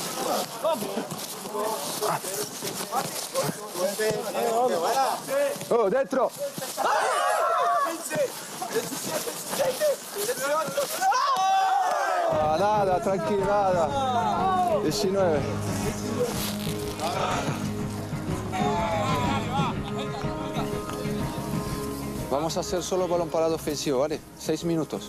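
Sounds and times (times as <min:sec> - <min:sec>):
people shouting and laughing: 0:00.0 - 0:03.4, 0:06.4 - 0:22.2.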